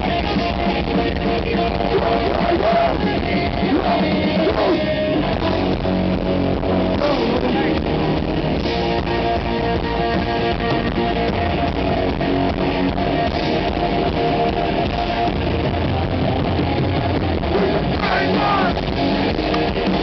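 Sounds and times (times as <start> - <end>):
live punk band playing: 0.0 - 20.0.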